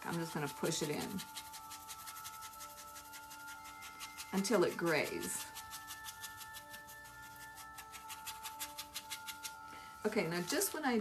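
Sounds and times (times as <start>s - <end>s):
paintbrush scrubbing wood: 0.0s - 9.6s
quiet background music: 0.0s - 11.0s.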